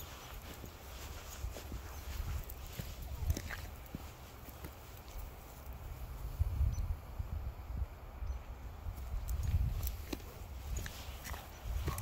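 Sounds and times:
footsteps on gravel: 0:00.0 - 0:06.2, 0:09.0 - 0:12.0
wind rumble on microphone: 0:00.0 - 0:12.0.

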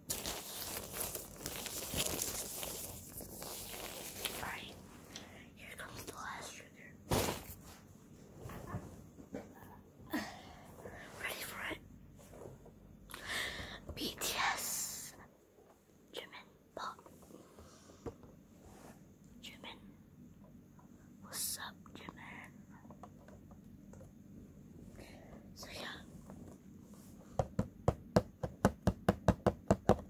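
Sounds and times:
person whispering: 0:04.0 - 0:07.1, 0:10.8 - 0:11.8, 0:13.8 - 0:15.3, 0:16.1 - 0:17.3, 0:19.4 - 0:19.8, 0:21.2 - 0:22.9, 0:24.9 - 0:26.2.

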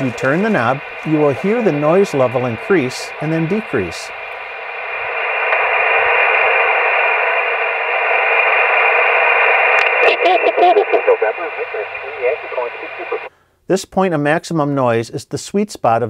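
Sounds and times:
voice from radio receiver: 0:00.0 - 0:04.1, 0:09.8 - 0:13.3
radio band noise hiss: 0:00.0 - 0:13.3.

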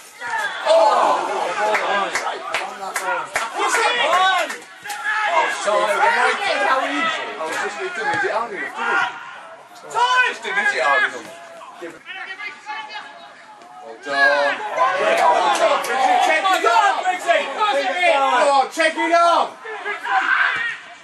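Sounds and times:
men shouting and calling: 0:00.0 - 0:21.0.

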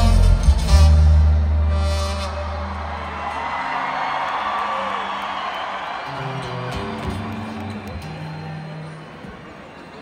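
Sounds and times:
music with heavy bass: 0:00.0 - 0:02.3
crowd cheering and whooping: 0:02.0 - 0:10.0.

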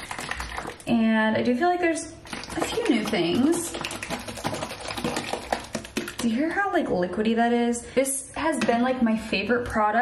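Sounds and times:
liquid sloshing in shaken tube: 0:00.0 - 0:00.9, 0:02.2 - 0:06.4.

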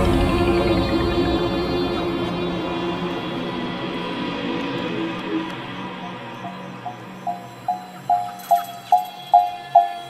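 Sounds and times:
low synth pad: 0:00.0 - 0:10.0.

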